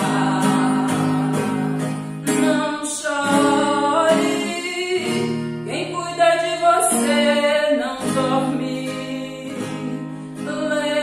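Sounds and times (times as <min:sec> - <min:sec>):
strummed acoustic guitar: 0:00.0 - 0:11.0
woman singing a hymn: 0:00.0 - 0:11.0.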